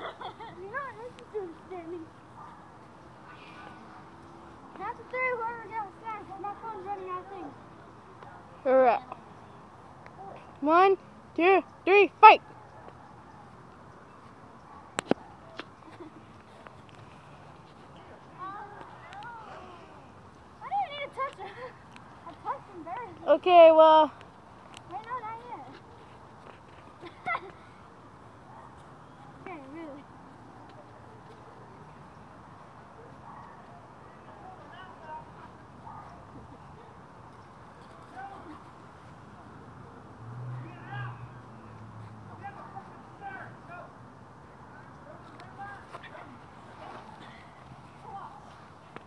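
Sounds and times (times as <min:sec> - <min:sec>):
teenagers laughing and squealing: 0:00.0 - 0:01.1.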